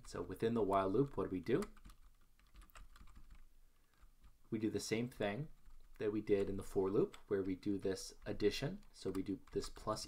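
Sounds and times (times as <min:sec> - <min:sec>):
faint keyboard keystrokes: 0:00.0 - 0:04.4, 0:08.2 - 0:10.0.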